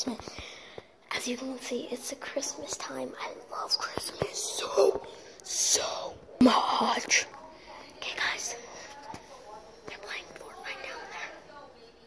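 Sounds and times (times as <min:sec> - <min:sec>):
boy whispering: 0:00.0 - 0:11.6.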